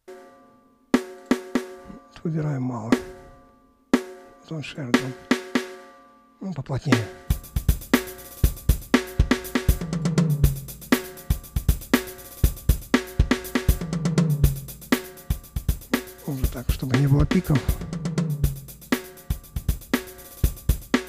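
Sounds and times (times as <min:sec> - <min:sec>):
drum kit groove: 0:00.9 - 0:05.9, 0:06.7 - 0:21.0
tom fill: 0:01.0 - 0:21.0.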